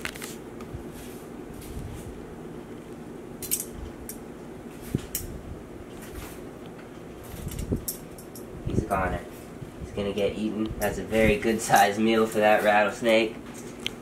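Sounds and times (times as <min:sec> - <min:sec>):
low room hum: 0:00.0 - 0:14.0.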